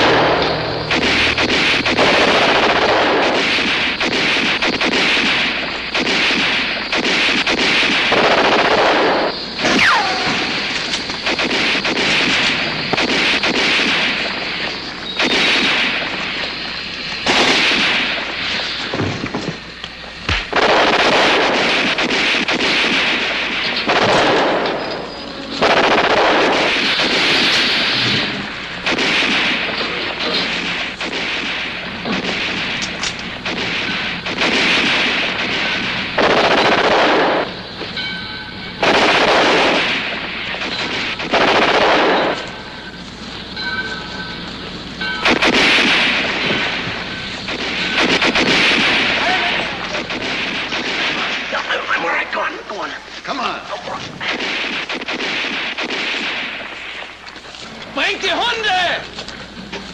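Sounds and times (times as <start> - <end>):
single gunshots: 0.0 - 16.4, 17.2 - 19.6, 20.3 - 37.7, 38.8 - 42.9, 45.1 - 52.6, 54.2 - 57.2
machine-gun fire: 0.0 - 19.6, 20.3 - 37.7, 38.8 - 43.0, 45.2 - 52.7, 54.2 - 57.2.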